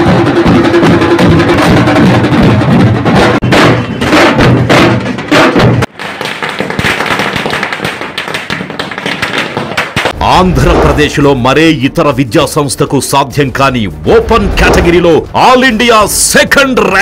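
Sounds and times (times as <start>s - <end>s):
drum band beating large drums: 0.0s - 5.9s.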